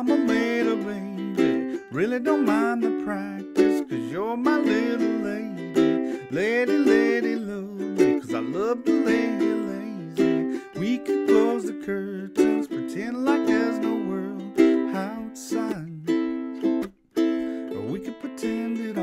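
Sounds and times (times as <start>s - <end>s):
man singing: 0.0s - 16.4s, 17.3s - 19.0s
ukulele strumming: 0.0s - 19.0s.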